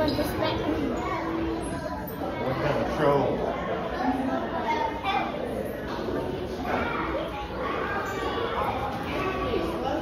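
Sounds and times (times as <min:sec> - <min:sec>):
chatter of children and adults: 0:00.0 - 0:10.0.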